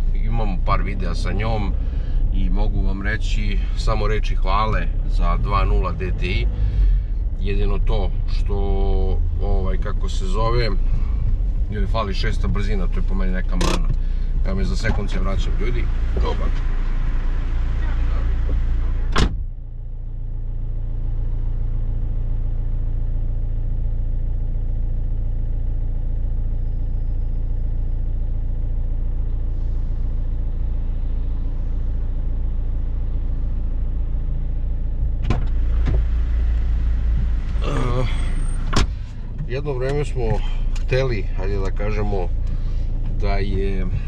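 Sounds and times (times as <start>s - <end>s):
diesel engine idling: 0.0s - 44.0s
car door shutting: 13.5s - 14.1s, 17.8s - 19.5s, 35.2s - 40.9s.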